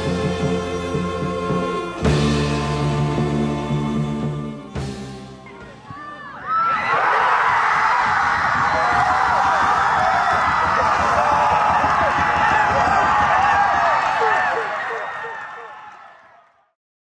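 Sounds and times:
crowd cheering and shouting: 0:05.4 - 0:16.7.

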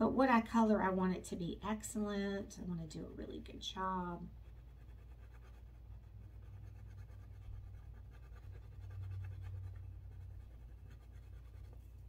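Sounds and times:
low steady hum: 0:00.0 - 0:12.0
crayon scratching on paper: 0:04.4 - 0:12.0.

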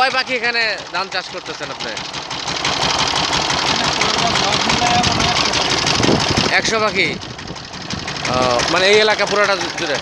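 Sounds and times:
tiller engine chugging: 0:00.0 - 0:10.0.

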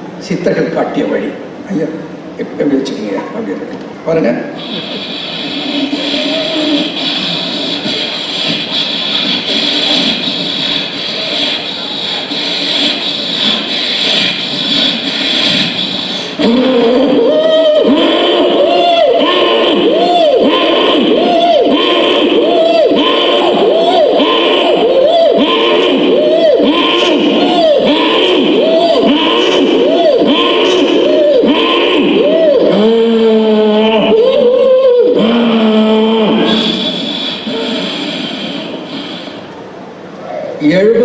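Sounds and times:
hall murmur: 0:03.2 - 0:40.6
man's rhythmic vocalised breaths: 0:04.6 - 0:17.2, 0:36.3 - 0:39.7.

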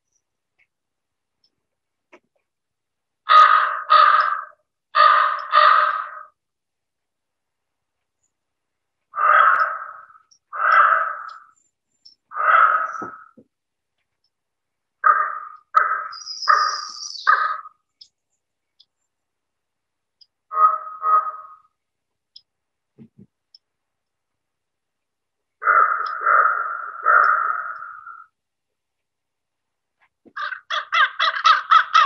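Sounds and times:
raven croaking: 0:03.2 - 0:06.4, 0:09.1 - 0:13.5, 0:15.0 - 0:17.9, 0:20.4 - 0:21.8, 0:25.6 - 0:28.4, 0:30.3 - 0:32.0.

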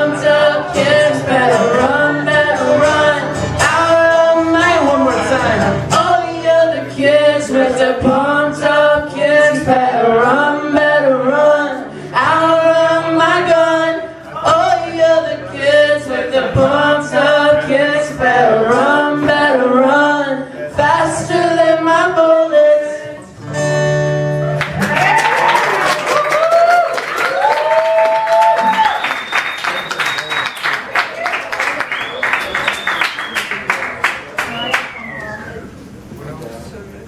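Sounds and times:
voices singing wordless melody: 0:00.0 - 0:23.3
acoustic guitar: 0:00.0 - 0:26.1
audience applauding and cheering: 0:24.6 - 0:35.2
whistle in crowd: 0:28.6 - 0:30.9, 0:31.8 - 0:33.7, 0:34.4 - 0:35.7.

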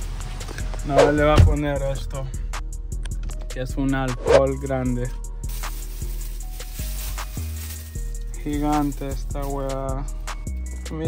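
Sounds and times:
deep bass notes: 0:00.6 - 0:03.4
drum hits: 0:01.0 - 0:01.8.

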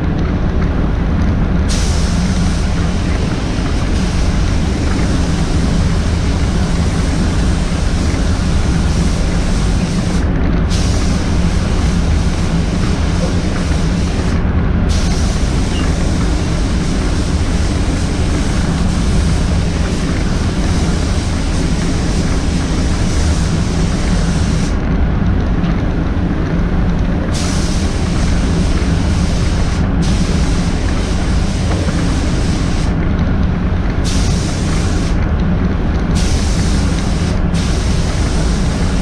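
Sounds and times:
air handling running: 0:00.0 - 0:39.0
spray gun hissing: 0:01.7 - 0:24.8, 0:27.3 - 0:33.0, 0:34.0 - 0:35.2, 0:36.2 - 0:39.0.

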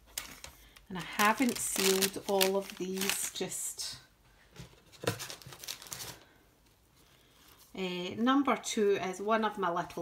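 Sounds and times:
gift packaging crinkling: 0:00.0 - 0:03.6, 0:05.0 - 0:06.2.

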